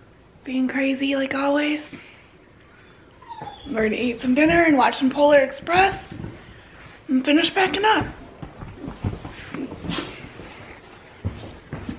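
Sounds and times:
dog whimpering: 0:02.6 - 0:04.7.

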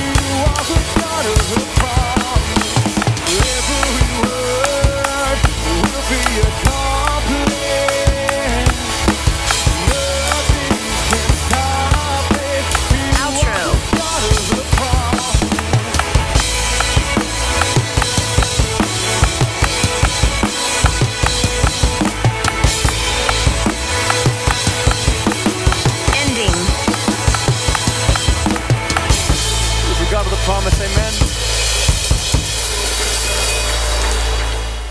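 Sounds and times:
bass: 0:00.0 - 0:34.9
drum kit groove: 0:00.0 - 0:34.9.

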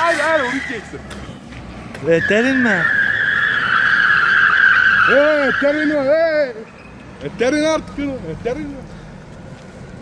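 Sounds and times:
car tyres squealing: 0:00.0 - 0:09.2.

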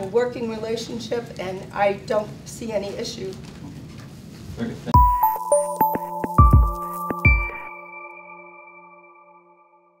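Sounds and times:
ringing bell-like chime tones: 0:05.0 - 0:10.0.

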